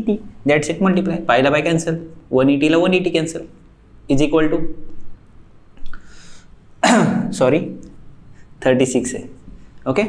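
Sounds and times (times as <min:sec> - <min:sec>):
man speaking: 0:00.0 - 0:04.8, 0:06.8 - 0:07.9, 0:08.6 - 0:10.0
man clearing his throat: 0:06.8 - 0:07.3.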